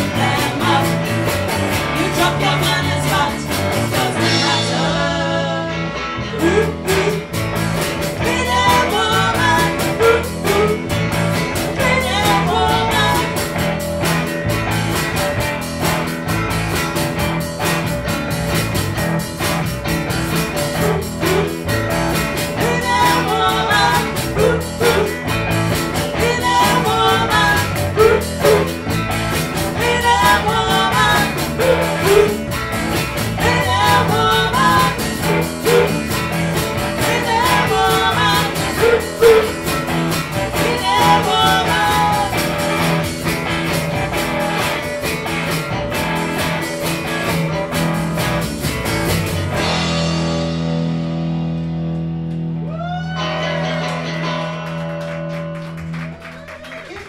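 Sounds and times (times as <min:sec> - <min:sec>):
person singing lead vocal: 0:00.0 - 0:07.5, 0:08.2 - 0:11.0, 0:11.7 - 0:13.6, 0:20.8 - 0:21.6, 0:22.5 - 0:25.3, 0:26.0 - 0:28.8, 0:29.6 - 0:32.5, 0:33.2 - 0:39.7, 0:40.4 - 0:43.0
live rock band playing: 0:00.0 - 0:56.4.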